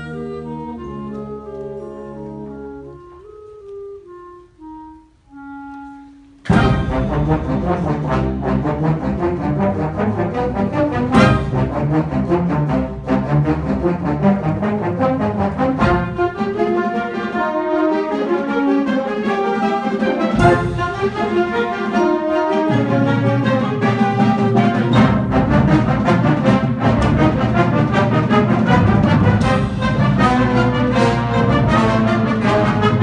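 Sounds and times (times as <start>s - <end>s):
wind band playing: 0.0s - 33.0s.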